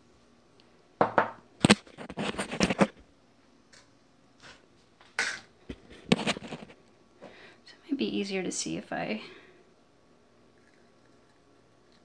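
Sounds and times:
small objects knocking on table: 1.0 - 1.8.

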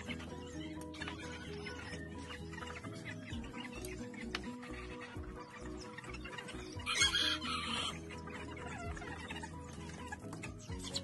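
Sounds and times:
background music: 0.0 - 11.0
chickens clucking: 0.0 - 11.0.

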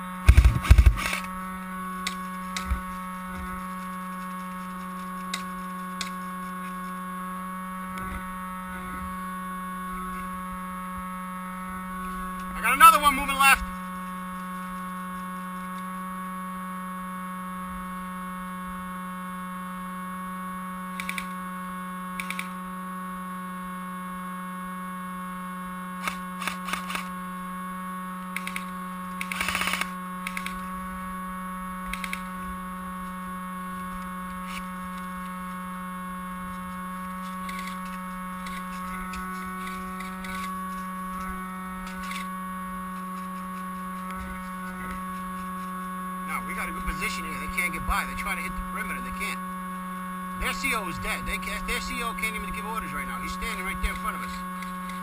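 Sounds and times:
high-pitched whines: 0.0 - 23.4, 26.0 - 55.0
steady electrical hum: 0.0 - 55.0
sharp clicks: 21.0 - 21.4, 22.2 - 22.6, 26.0 - 27.1, 28.3 - 30.7, 31.8 - 32.3, 37.3 - 40.8.

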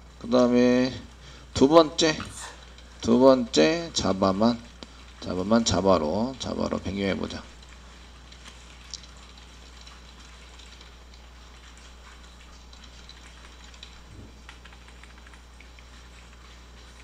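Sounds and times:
low electrical hum: 0.0 - 17.0
keyboard typing: 8.3 - 17.0.

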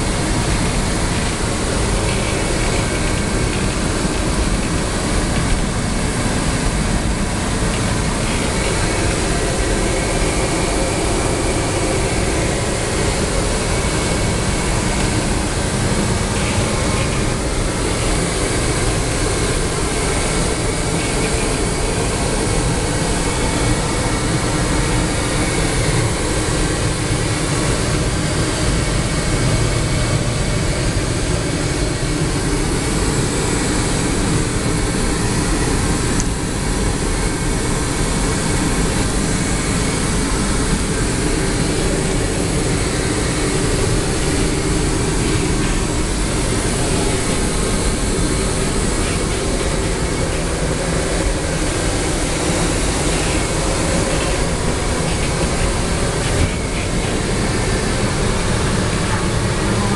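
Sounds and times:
airliner cabin engine rush: 0.0 - 59.9.

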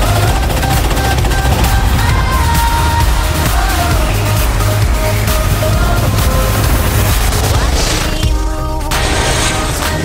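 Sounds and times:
loud music with heavy bass: 0.0 - 10.0.

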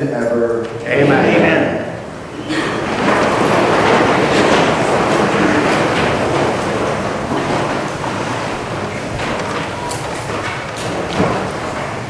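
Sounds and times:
congregation rustling and shuffling: 0.0 - 12.0.

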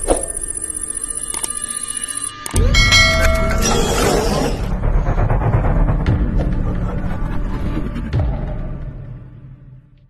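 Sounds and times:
high ringing tone: 0.0 - 4.7
bright chiming tones: 0.4 - 4.8.

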